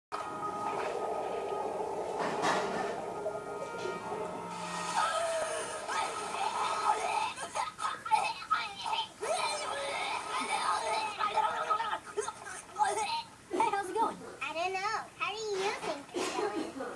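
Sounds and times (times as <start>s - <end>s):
cartoon background music: 0.2s - 7.4s.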